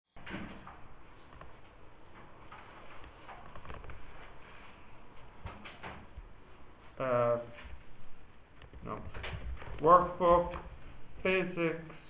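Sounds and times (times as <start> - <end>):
background hiss: 0.2 - 12.0.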